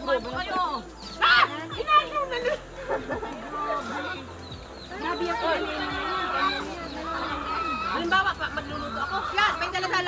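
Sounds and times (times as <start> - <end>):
chickens calling: 0.0 - 10.0
people chatting: 4.9 - 10.0.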